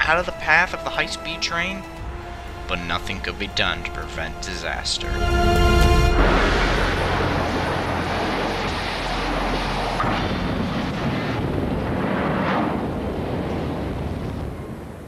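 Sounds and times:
train crash rumbling roar: 1.8s - 14.5s.

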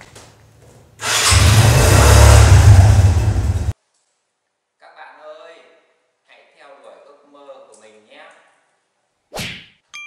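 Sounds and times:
motorbike engine starting and running: 1.0s - 3.8s.

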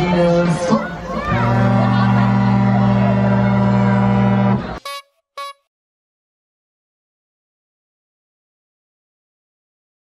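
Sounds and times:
fairground ride music: 0.0s - 5.6s
loud low horn blast: 1.2s - 5.6s
short high beeps: 4.8s - 5.6s.

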